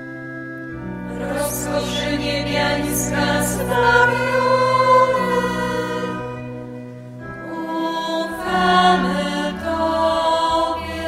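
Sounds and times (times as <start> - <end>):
low accompanying tone: 0.0 - 11.0
women's choir singing a hymn: 1.0 - 11.0.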